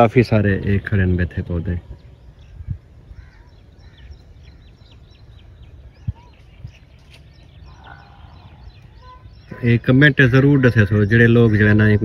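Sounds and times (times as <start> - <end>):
high ticking bird calls: 0.0 - 12.0
faint bird calls: 0.7 - 12.0.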